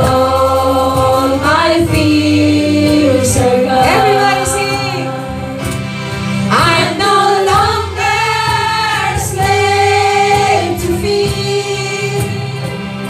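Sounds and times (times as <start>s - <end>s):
women singing gospel song: 0.0s - 5.8s, 6.5s - 13.0s
group of voices singing: 0.0s - 13.0s
low musical accompaniment: 0.0s - 13.0s.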